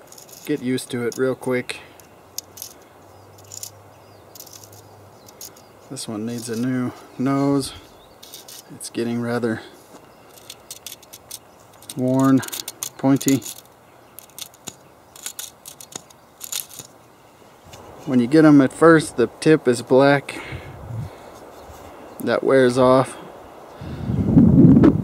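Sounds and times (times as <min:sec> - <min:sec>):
metallic clicks of chainsaw chain: 0:00.0 - 0:01.3, 0:02.0 - 0:05.7, 0:10.3 - 0:16.9.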